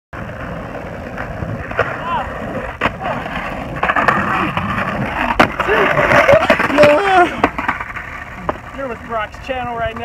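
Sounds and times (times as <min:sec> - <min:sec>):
skateboard wheels rolling on concrete: 0:00.1 - 0:10.0.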